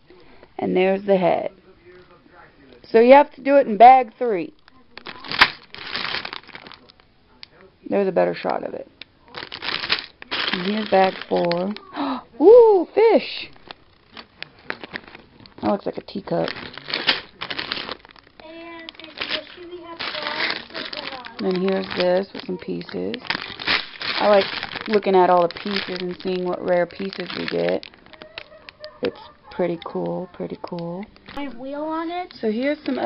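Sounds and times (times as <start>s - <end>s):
plastic bag crinkling: 4.6s - 7.0s, 9.2s - 12.2s, 13.4s - 33.0s
plastic bricks shifting: 9.4s - 11.7s, 16.3s - 18.3s, 18.9s - 29.3s
person speaking: 10.2s - 13.6s, 18.4s - 33.0s.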